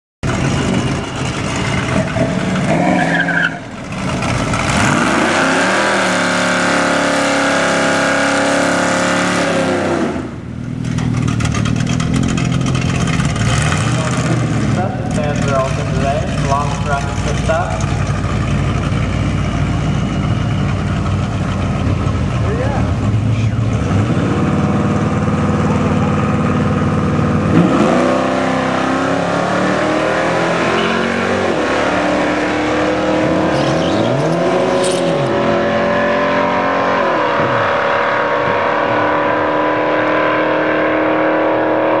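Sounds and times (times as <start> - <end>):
drag car engine revving: 0.2 - 42.0.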